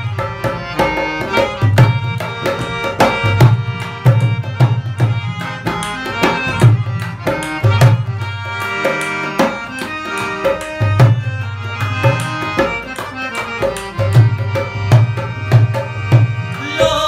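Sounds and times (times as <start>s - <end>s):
hand drum rhythm: 0.0s - 17.0s
harmonium melody: 0.0s - 17.0s.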